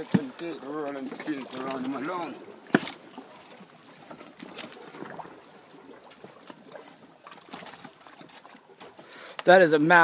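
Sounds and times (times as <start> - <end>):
logs knocking and rustling: 0.0 - 5.4.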